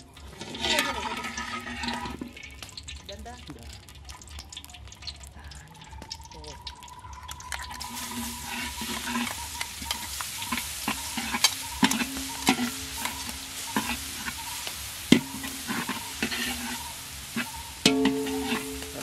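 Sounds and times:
food sizzling in a pan: 0:00.0 - 0:19.0
spatula scraping metal pan: 0:00.2 - 0:02.6, 0:07.5 - 0:19.0.

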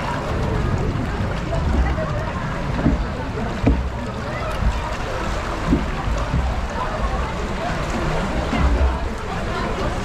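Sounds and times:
rushing water: 0:00.0 - 0:10.0
dull knocks: 0:02.8 - 0:03.9.

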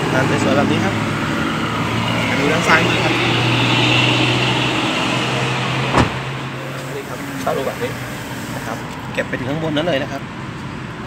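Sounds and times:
hiss: 0:06.6 - 0:08.9.

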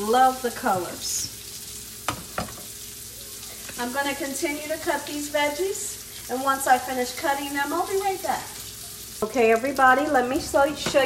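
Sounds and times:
meat sizzling in a pan: 0:00.0 - 0:11.0.

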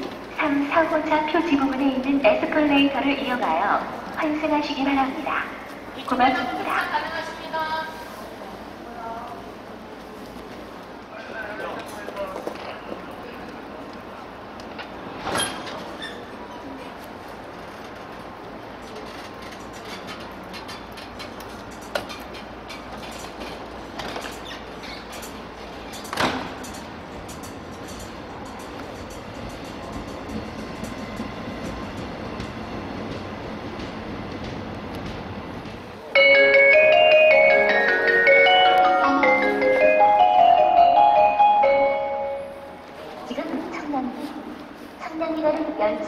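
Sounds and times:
train rumbling: 0:00.0 - 0:46.0
sharp train clanks: 0:17.8 - 0:43.9.

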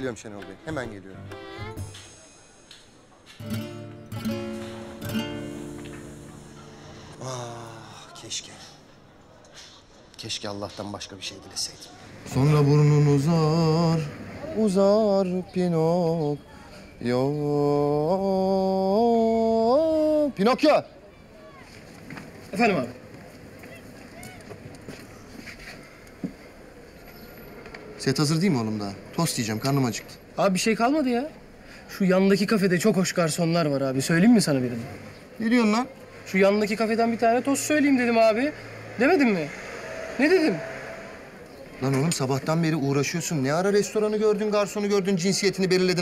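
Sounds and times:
street background: 0:00.0 - 0:46.0
acoustic guitar strumming chords: 0:00.4 - 0:02.7, 0:03.4 - 0:07.4.

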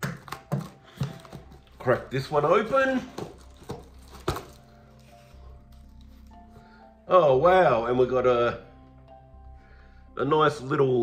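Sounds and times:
box snapping open: 0:00.0 - 0:01.8, 0:03.1 - 0:04.6
faint background music: 0:00.0 - 0:11.0.

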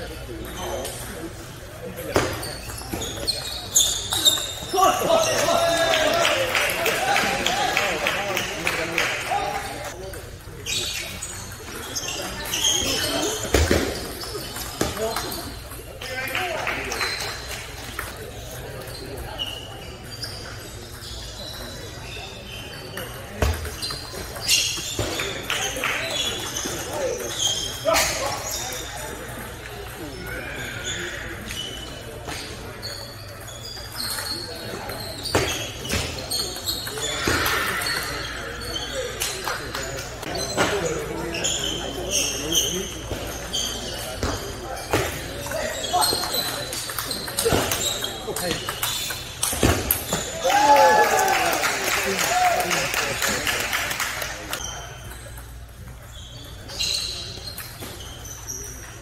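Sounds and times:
voices in a hall: 0:00.0 - 0:59.0
table tennis balls bouncing: 0:09.9 - 0:21.8, 0:22.9 - 0:30.2, 0:42.0 - 0:50.4.

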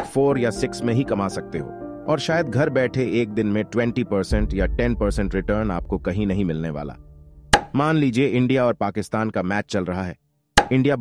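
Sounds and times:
narrator speaking: 0:00.0 - 0:07.0, 0:07.7 - 0:11.0.

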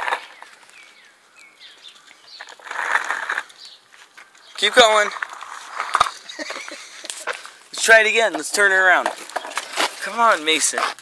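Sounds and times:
scraping rustle: 0:02.3 - 0:11.0.

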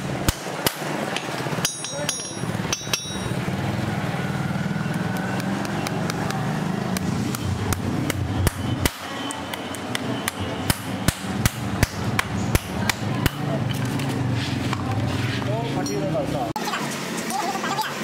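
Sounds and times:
hammer tapping horseshoe nails: 0:00.6 - 0:03.4.

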